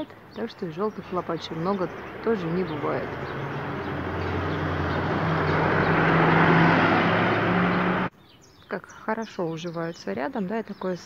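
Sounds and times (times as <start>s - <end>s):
vehicle driving past: 1.0s - 8.1s.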